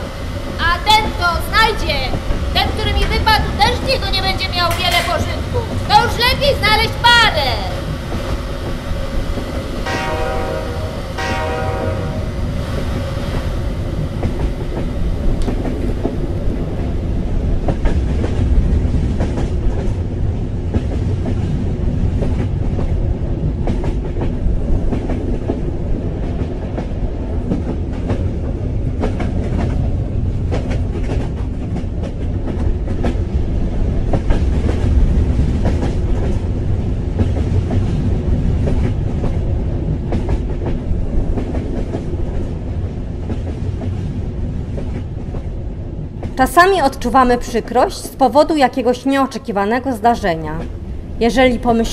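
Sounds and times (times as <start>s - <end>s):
wheels clacking over rails: 0.0s - 49.0s
train rumbling: 0.0s - 51.9s.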